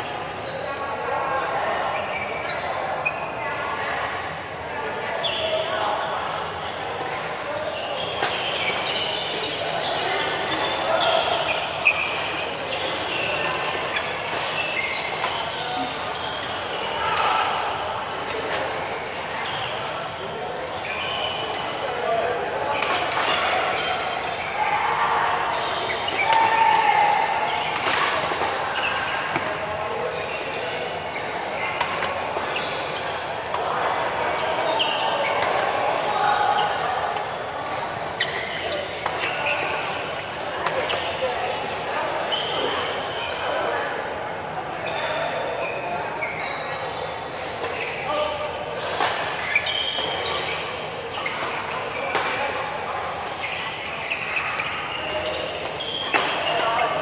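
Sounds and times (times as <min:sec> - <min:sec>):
shoe squeaks on court: 0:07.5 - 0:17.4, 0:20.7 - 0:21.7, 0:28.7 - 0:33.3, 0:38.2 - 0:40.1, 0:40.8 - 0:43.7, 0:44.8 - 0:52.7, 0:53.3 - 0:57.0.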